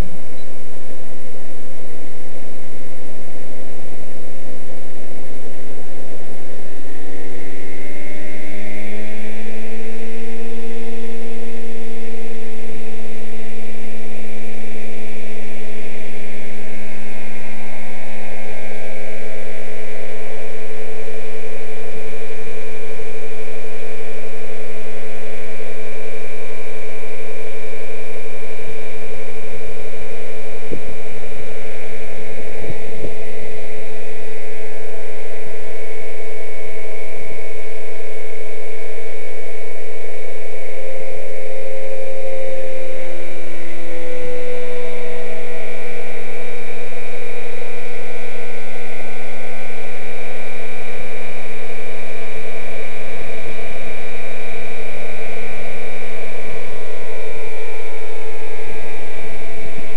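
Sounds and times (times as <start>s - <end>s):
model helicopter whine: 6.7s - 20.2s, 38.9s - 48.8s.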